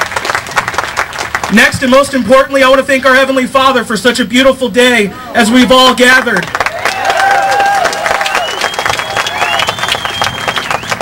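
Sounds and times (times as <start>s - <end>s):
crowd clapping and cheering: 0.0s - 2.2s, 6.1s - 11.0s
long high whistle: 8.2s - 11.0s.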